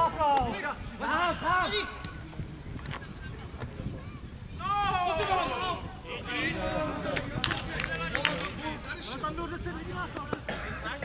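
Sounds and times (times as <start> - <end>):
wind rumbling on microphone: 0.0 - 10.8
distant shouts of players: 3.9 - 8.9.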